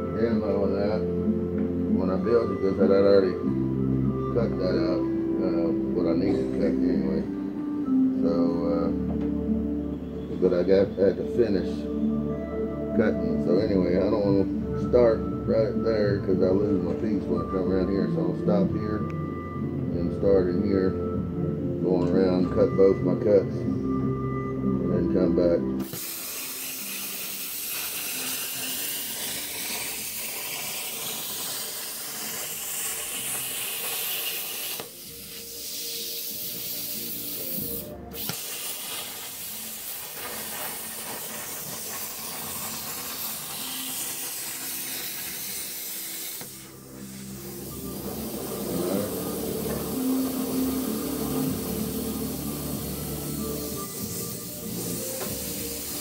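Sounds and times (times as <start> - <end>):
plasma cutter arc hissing: 25.8 - 56.0.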